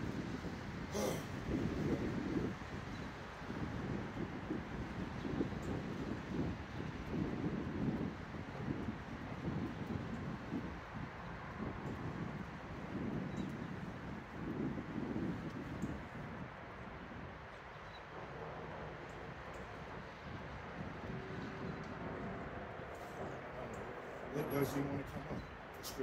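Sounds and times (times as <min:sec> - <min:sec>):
wind buffeting microphone: 0:00.0 - 0:26.0.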